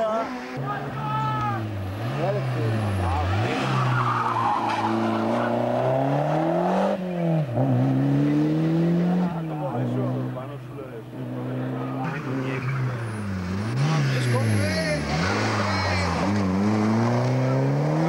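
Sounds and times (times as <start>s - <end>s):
rally car engine at hard throttle: 0.0s - 18.0s.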